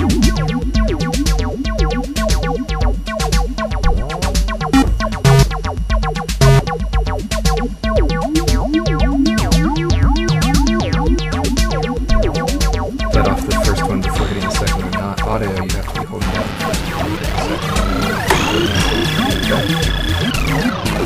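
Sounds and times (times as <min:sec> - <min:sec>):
drum machine beat: 0:00.0 - 0:21.0
gliding acid synth bassline: 0:00.0 - 0:21.0.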